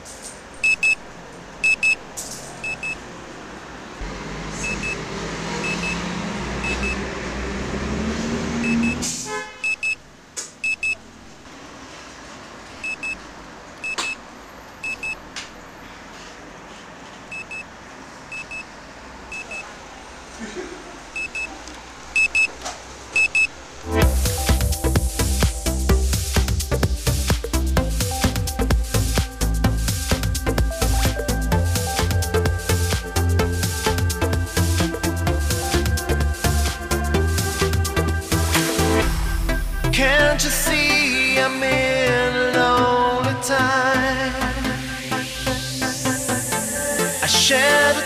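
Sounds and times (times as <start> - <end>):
alarm clock double beeps: 0.6 - 1.0, 1.6 - 2.0, 2.6 - 3.0, 4.6 - 5.0, 5.6 - 6.0, 6.6 - 7.0, 8.6 - 9.0, 9.6 - 10.0, 10.6 - 11.0, 12.8 - 13.2, 14.8 - 15.2, 17.3 - 17.7, 18.3 - 18.6, 19.3 - 19.7, 21.2 - 21.5, 22.2 - 22.5, 23.2 - 23.5
rumble rising in pitch: 4.0 - 9.0, 27.6 - 40.9.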